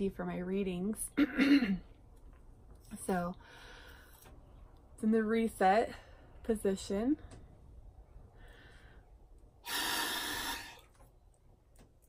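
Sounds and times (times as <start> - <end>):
forceful exhalation into meter: 9.6 - 10.9.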